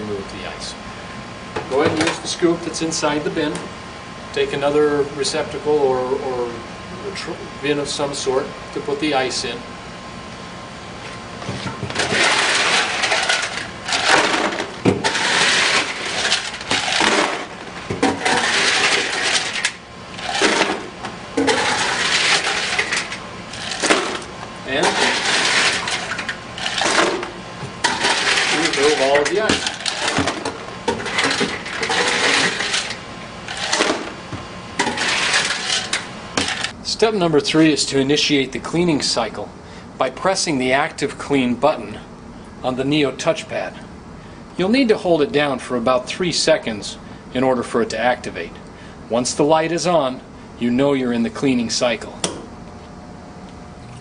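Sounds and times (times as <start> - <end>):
ice cubes rattling in plastic scoop: 12.0 - 17.5, 18.2 - 20.7, 21.5 - 23.0, 24.8 - 27.2, 27.9 - 34.0.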